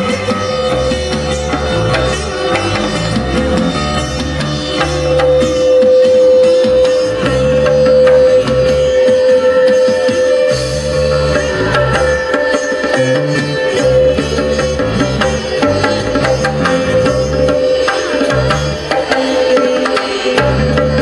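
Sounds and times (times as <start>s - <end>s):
stepping bass line: 0.0s - 9.2s, 13.0s - 19.1s
hand drum strokes: 0.0s - 21.0s
held drone note: 0.0s - 21.0s.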